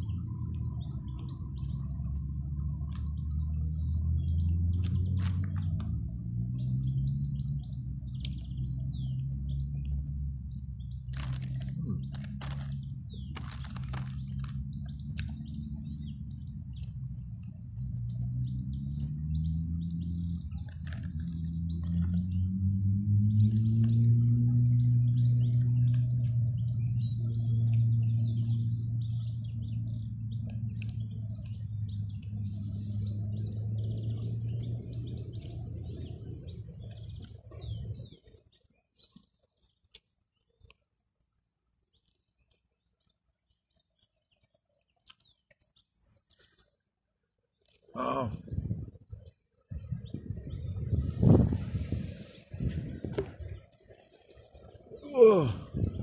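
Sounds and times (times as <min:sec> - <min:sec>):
birds chirping and singing: 0:00.0 - 0:40.0, 0:41.8 - 0:46.8, 0:47.6 - 0:56.0.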